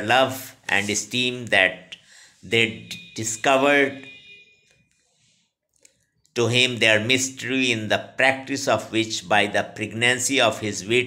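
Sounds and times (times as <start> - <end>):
man reading aloud: 0.0 - 4.2, 6.3 - 11.0
faint high-pitched tone: 2.5 - 4.9.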